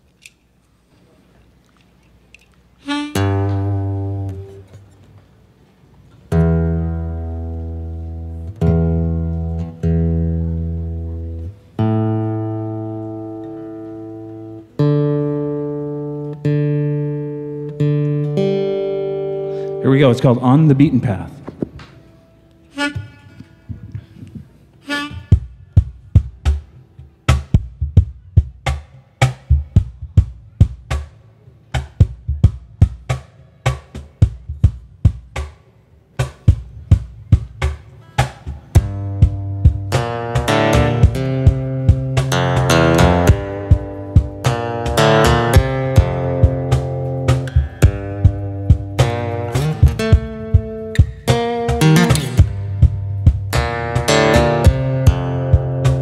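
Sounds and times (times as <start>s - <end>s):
harmonica: 2.8s - 4.6s, 22.6s - 24.2s, 24.8s - 25.7s
acoustic guitar bass notes: 2.8s - 56.0s.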